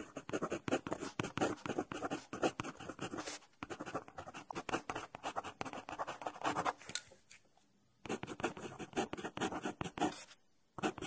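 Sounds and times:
marker pen scratching paper: 0.0s - 6.8s, 8.1s - 11.0s.

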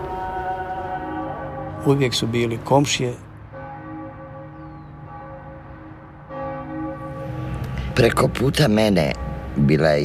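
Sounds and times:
church bell ringing: 3.5s - 10.0s.

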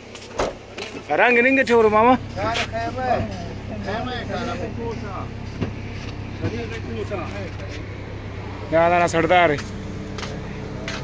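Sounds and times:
vehicle idling hum: 0.0s - 11.0s
men talking: 0.8s - 11.0s.

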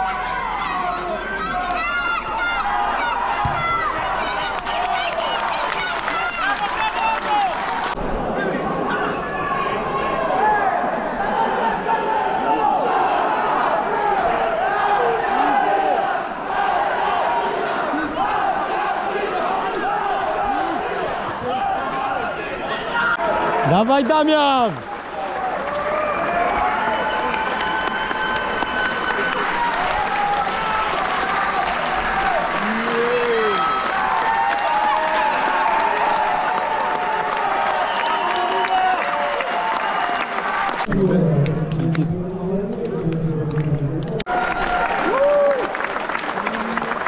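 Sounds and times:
crowd shouting and calling: 0.0s - 40.8s.

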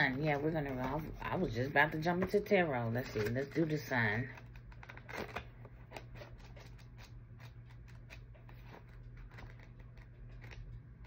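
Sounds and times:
paper pages flicking: 4.3s - 11.0s.

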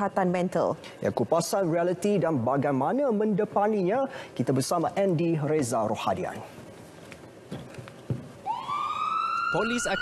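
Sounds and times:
siren wailing: 8.4s - 10.0s.

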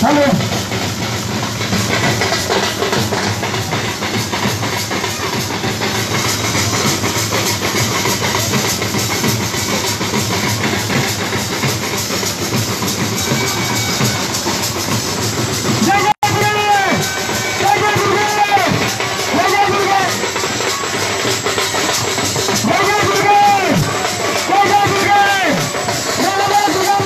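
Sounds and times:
barrel drums beaten: 0.0s - 27.0s.

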